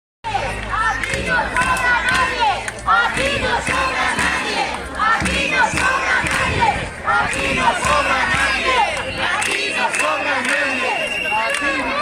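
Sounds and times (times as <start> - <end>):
crowd shouting together: 0.2 - 12.0.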